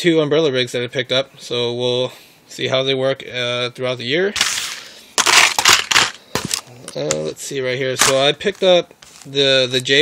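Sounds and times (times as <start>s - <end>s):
plastic and paper crinkling: 4.4s - 7.1s, 8.0s - 9.4s.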